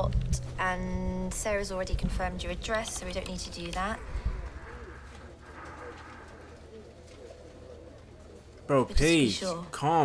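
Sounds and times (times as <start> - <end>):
low steady hum: 0.0 - 9.7
pigeon cooing: 2.7 - 8.9.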